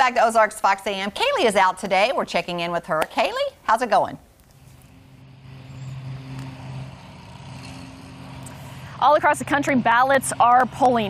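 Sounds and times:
low mechanical hum: 4.3 - 11.0.

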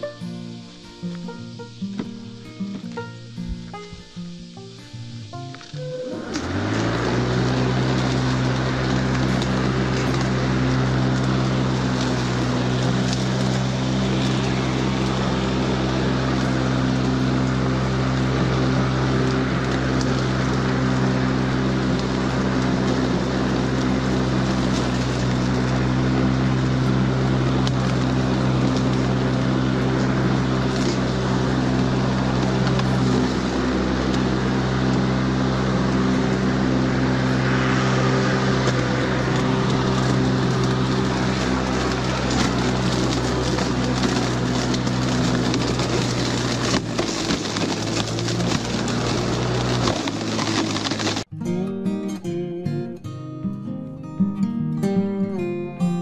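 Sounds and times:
electric lawn mower running: 0.0 - 51.3
grassy hiss: 0.0 - 51.3.

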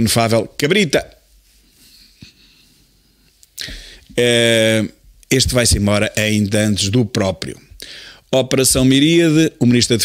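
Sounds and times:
sharp intake of breath: 3.6 - 4.1, 7.8 - 8.3.

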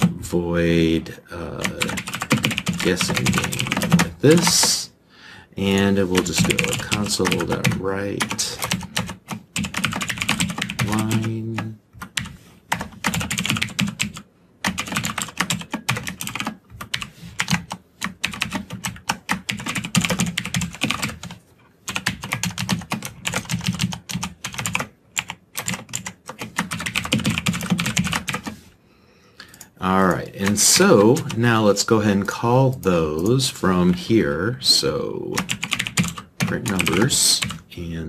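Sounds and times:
fast typing on keyboard: 1.5 - 4.8, 5.7 - 28.6, 29.5 - 32.4, 35.3 - 37.6.

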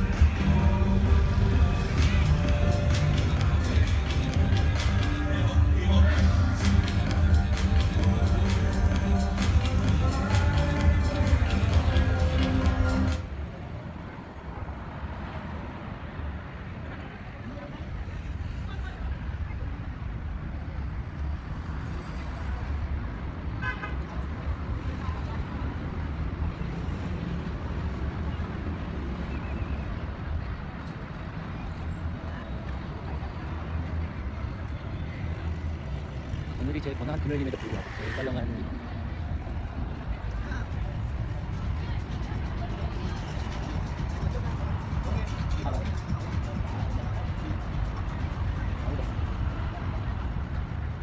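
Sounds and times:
background voices: 0.0 - 14.6
low traffic rumble: 0.0 - 51.0
vehicle horn toot: 23.6 - 24.0.

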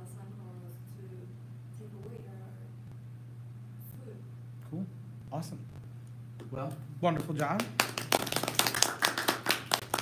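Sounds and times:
audience clapping: 7.2 - 10.0.

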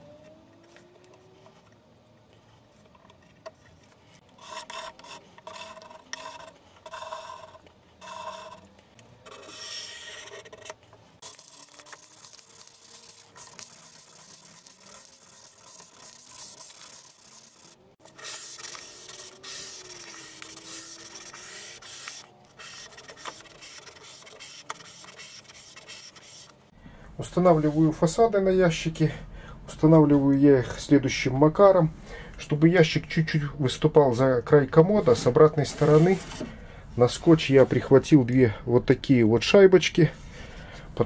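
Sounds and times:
sandpaper rubbing on wood: 11.2 - 26.6, 34.9 - 36.5.

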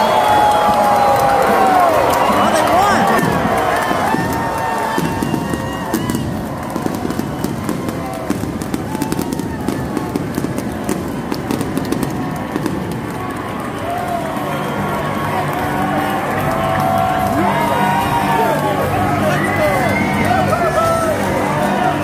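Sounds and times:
crowd chatter: 0.0 - 22.0
fireworks popping: 0.2 - 14.2.

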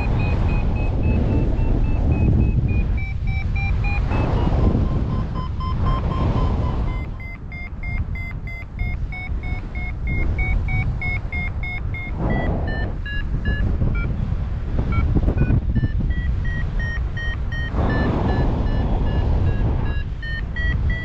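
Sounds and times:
variometer short beeps: 0.0 - 14.2, 14.8 - 21.0
wind rushing over microphone: 0.0 - 21.0.

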